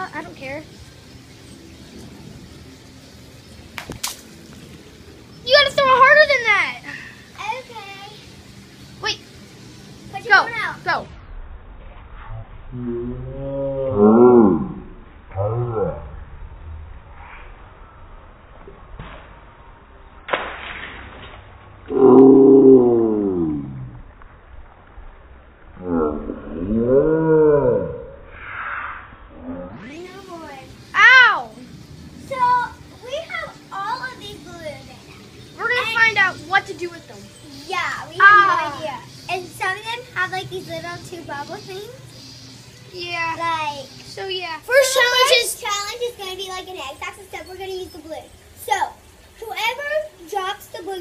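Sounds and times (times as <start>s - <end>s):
water balloon bursting: 3.7s - 4.4s, 20.3s - 21.4s.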